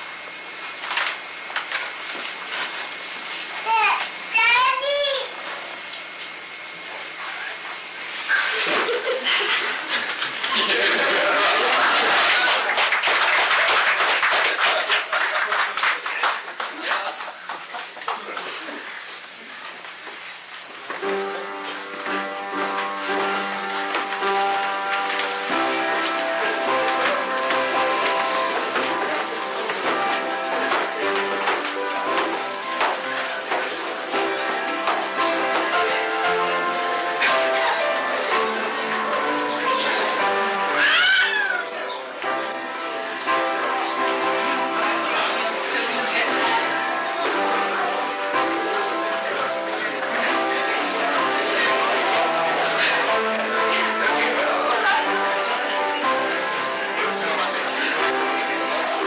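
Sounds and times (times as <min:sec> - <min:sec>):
audience clapping: 0:09.5 - 0:20.1, 0:20.9 - 0:41.6, 0:42.2 - 0:59.0
acoustic guitar music: 0:10.5 - 0:12.7, 0:20.9 - 0:40.8, 0:41.4 - 0:59.0
baby squealing: 0:40.8 - 0:41.7.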